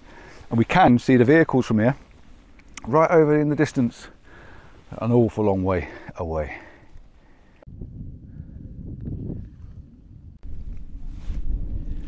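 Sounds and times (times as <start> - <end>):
wind buffeting microphone: 7.6 - 12.0.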